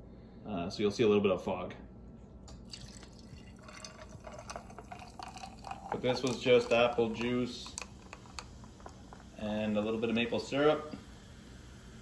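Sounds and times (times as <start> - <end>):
fizzy drink pouring into glass: 2.5 - 12.0.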